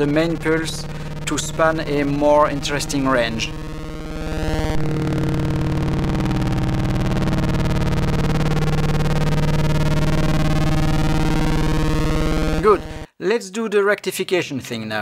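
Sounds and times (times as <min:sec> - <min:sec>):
low synthesizer drone: 0:00.0 - 0:13.1.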